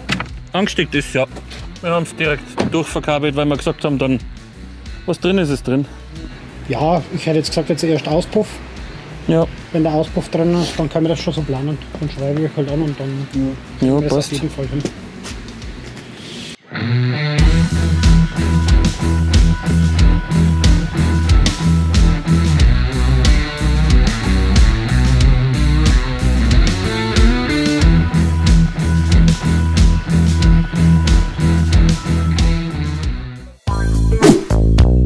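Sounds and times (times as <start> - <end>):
rock music with guitar: 16.6 - 35.0.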